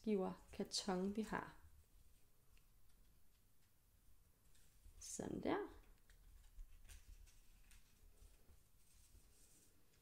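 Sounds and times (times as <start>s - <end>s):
soft yarn rustling: 0.0s - 10.0s.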